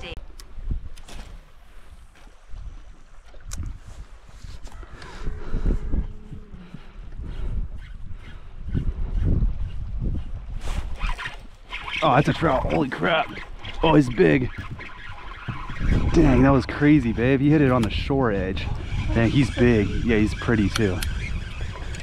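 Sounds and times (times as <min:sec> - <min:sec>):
choppy lake water: 0:00.0 - 0:22.0
wind gusting over microphone: 0:00.0 - 0:22.0.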